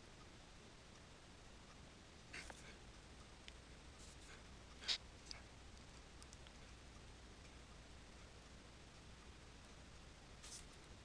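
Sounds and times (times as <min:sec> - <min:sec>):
faint room hiss: 0:00.0 - 0:11.0
scratchy computer mouse sound: 0:04.0 - 0:06.8.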